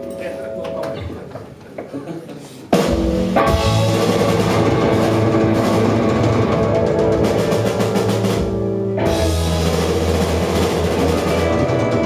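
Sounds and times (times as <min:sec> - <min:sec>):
drum kit: 0:02.7 - 0:12.0
bass guitar: 0:02.8 - 0:12.0
electric guitars: 0:02.8 - 0:12.0.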